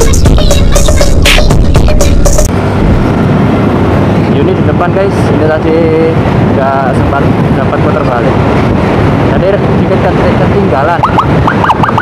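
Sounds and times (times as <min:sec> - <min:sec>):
wind on microphone: 0:02.5 - 0:12.0.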